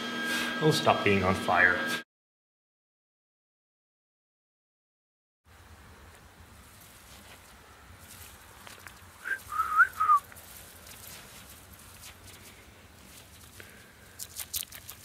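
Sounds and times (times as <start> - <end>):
soft crunches: 6.6 - 15.0
person whistling gliding notes: 9.2 - 10.3.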